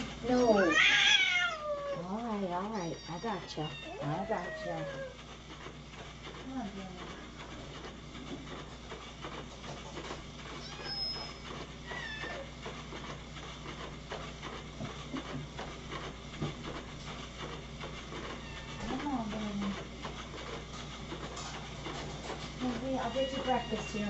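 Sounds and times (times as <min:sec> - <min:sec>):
low electrical hum: 0:00.0 - 0:24.0
cat meowing: 0:00.4 - 0:02.0, 0:02.9 - 0:05.1, 0:11.9 - 0:12.4
light knocks and clatter: 0:07.0 - 0:10.6.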